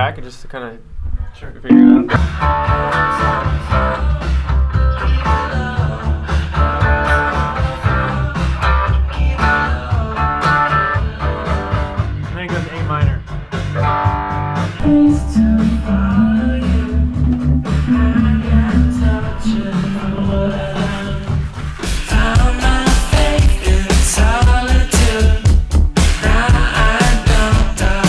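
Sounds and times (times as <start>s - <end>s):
indie rock band playing: 1.7s - 12.0s, 13.7s - 28.0s.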